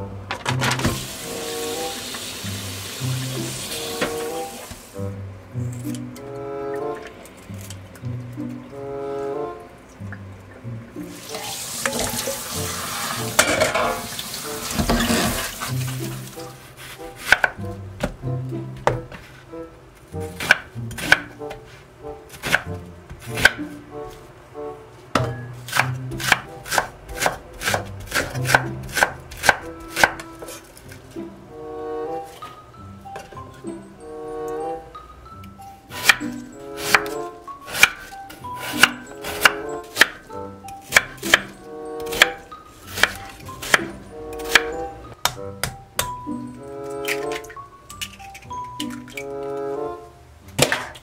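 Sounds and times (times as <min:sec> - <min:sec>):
knife chopping on wooden board: 0:16.8 - 0:19.3, 0:20.4 - 0:21.6, 0:22.3 - 0:23.7, 0:25.1 - 0:30.6, 0:35.9 - 0:38.1, 0:38.7 - 0:40.2, 0:40.9 - 0:46.2.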